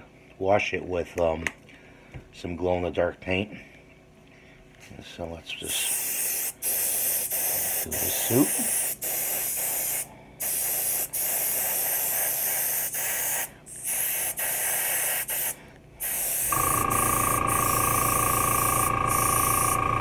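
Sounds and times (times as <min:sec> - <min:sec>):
airbrush spraying hiss: 0:05.7 - 0:19.8
motor hum with high whine: 0:15.6 - 0:20.0.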